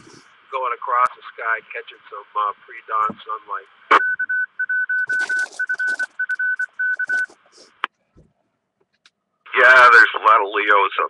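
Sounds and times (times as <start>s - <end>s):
morse code beeping tone: 3.9s - 7.4s.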